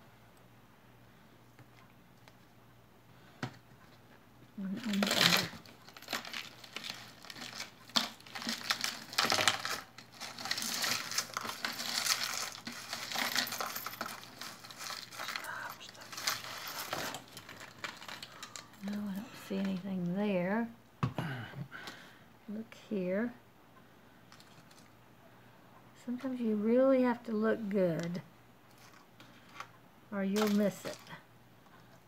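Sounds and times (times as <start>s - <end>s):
jewelry crinkling and rustling: 3.8s - 20.5s, 24.3s - 25.0s, 27.1s - 32.0s.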